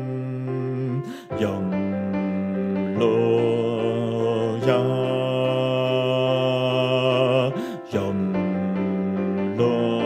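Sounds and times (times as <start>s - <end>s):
a cappella choir singing: 1.4s - 10.0s.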